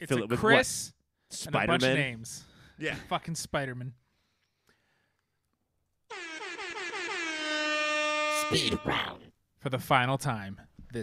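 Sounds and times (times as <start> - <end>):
air horn blast sliding down: 6.1 - 8.9.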